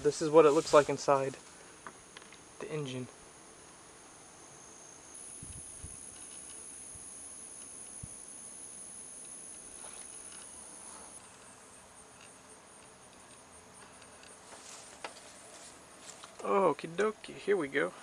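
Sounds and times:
insects buzzing: 0:00.0 - 0:18.0.

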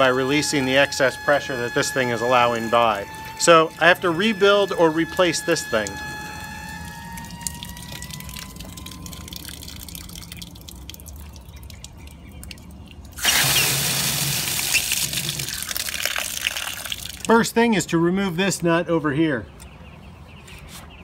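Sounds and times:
water gushing from valve: 0:00.0 - 0:17.3.

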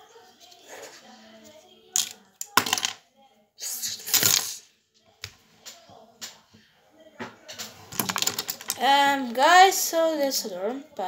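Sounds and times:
small hard objects rattling: 0:07.9 - 0:08.9.

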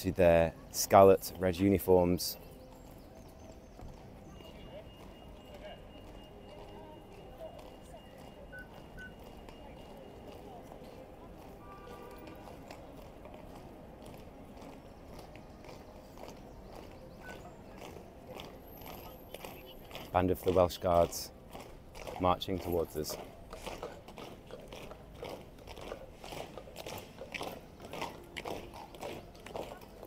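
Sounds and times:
marching boots on road: 0:00.0 - 0:30.0
onlookers murmuring: 0:00.0 - 0:30.0.

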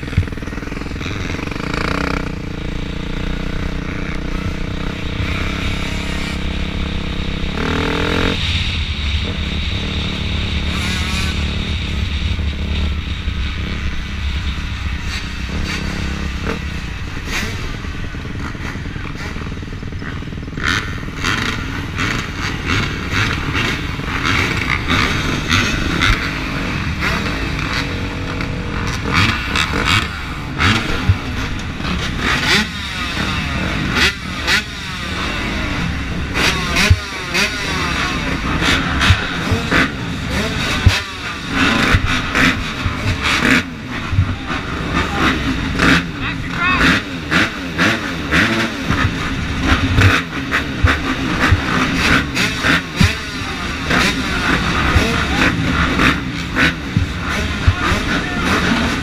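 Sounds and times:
motocross bike engines idling and revving: 0:00.0 - 0:59.0.

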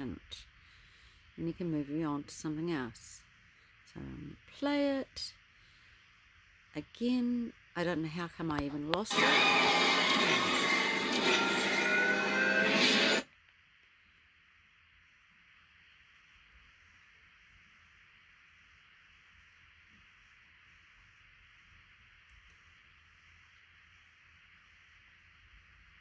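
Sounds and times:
faint steady hiss: 0:00.0 - 0:12.4, 0:13.2 - 0:26.0
video music and effects: 0:09.1 - 0:13.3.

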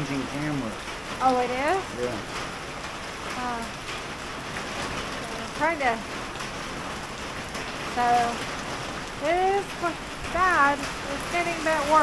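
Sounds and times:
heavy rain on ground and foliage: 0:00.0 - 0:12.0.

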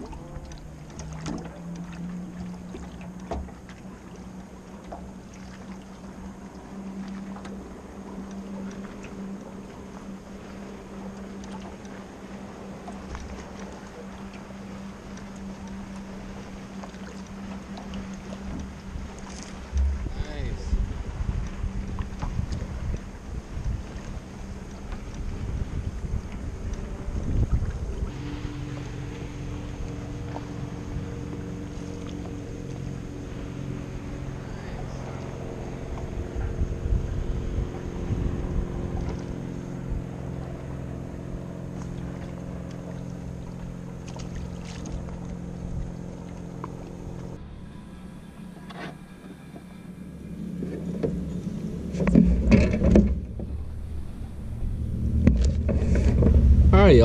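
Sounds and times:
boat motor humming: 0:00.0 - 0:57.0
wind buffeting microphone: 0:18.5 - 0:42.7, 0:50.2 - 0:57.0.

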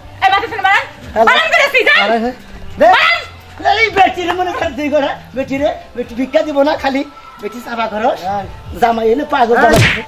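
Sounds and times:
whip-crack slap effect: 0:09.7 - 0:10.0.

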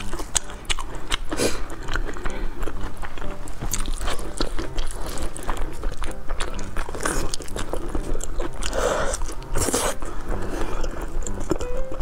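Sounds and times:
close chewing with wet smacks: 0:00.0 - 0:12.0.

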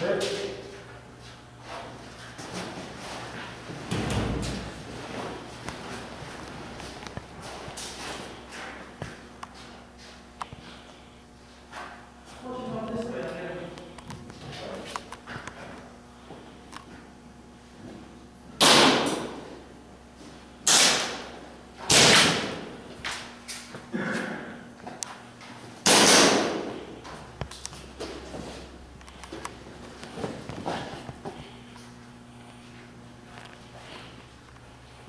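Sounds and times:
airsoft gun shots: 0:18.6 - 0:19.4, 0:20.7 - 0:21.2, 0:21.9 - 0:22.6, 0:25.8 - 0:26.7.

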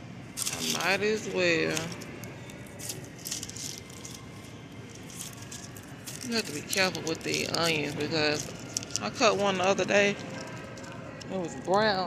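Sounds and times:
onion skins rustling and crackling: 0:00.3 - 0:12.0.

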